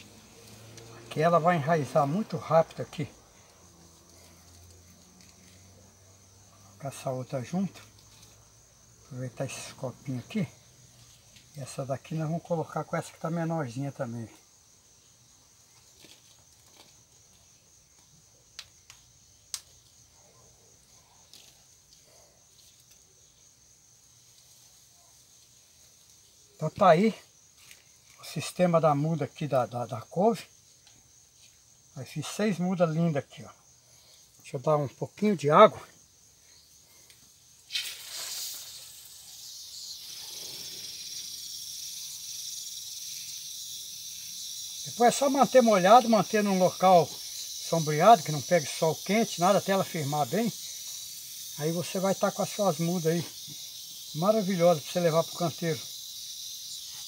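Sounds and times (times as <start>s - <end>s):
garden hose spraying water: 0.0s - 20.1s, 20.8s - 57.0s
insects chirring: 0.0s - 57.0s.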